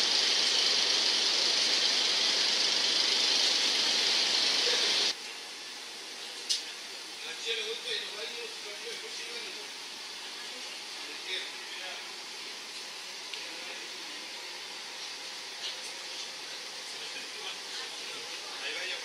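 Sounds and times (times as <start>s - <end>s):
steady hiss inside railcar: 0.0s - 19.0s
faint voices: 13.4s - 19.0s.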